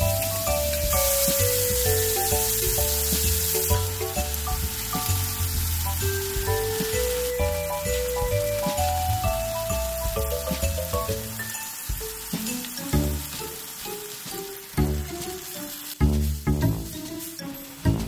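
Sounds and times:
gentle background music: 0.0s - 18.0s
meat sizzling in a frying pan: 0.0s - 18.0s.

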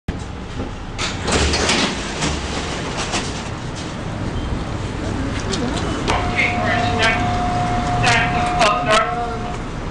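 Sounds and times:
subway train rumble and rattle: 0.1s - 9.9s.

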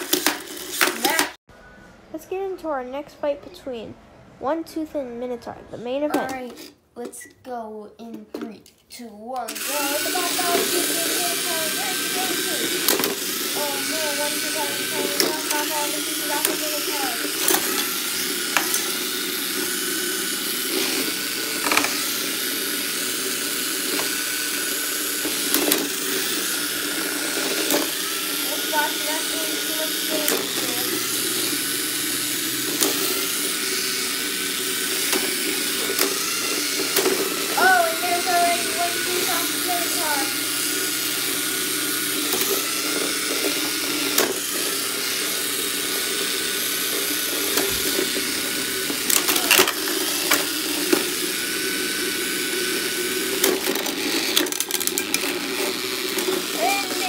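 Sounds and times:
small electric motors whining: 0.0s - 1.4s, 9.3s - 57.0s.

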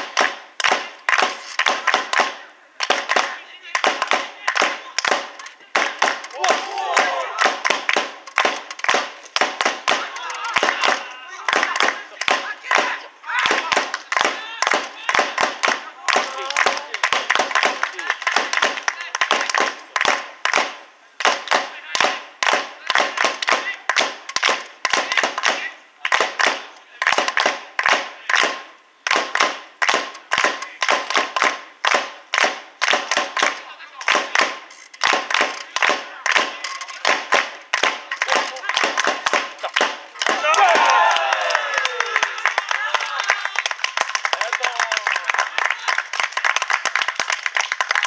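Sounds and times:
rhythmic hand clapping: 0.0s - 48.0s.

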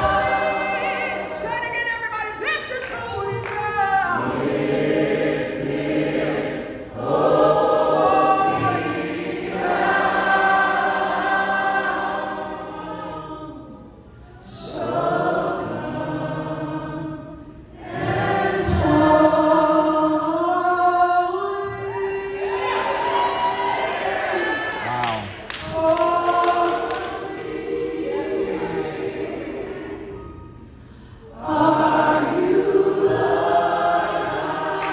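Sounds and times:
woman singing gospel lead: 0.0s - 17.3s, 17.9s - 24.8s, 25.4s - 30.6s, 31.3s - 34.9s
backing singers: 0.0s - 30.6s, 31.2s - 34.9s.

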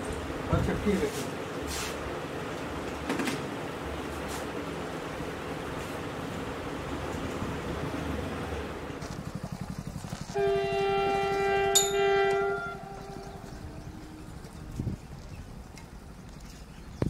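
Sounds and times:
locomotive horn blast: 10.3s - 14.4s.

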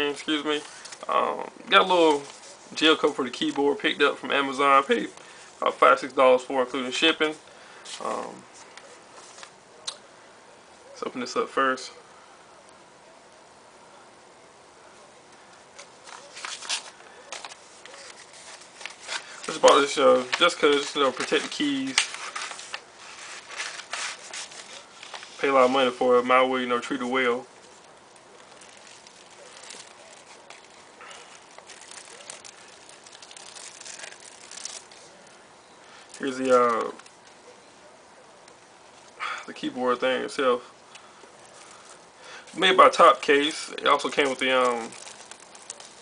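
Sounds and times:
paper envelope crinkling: 0.2s - 6.1s, 15.5s - 37.4s, 40.9s - 46.0s.

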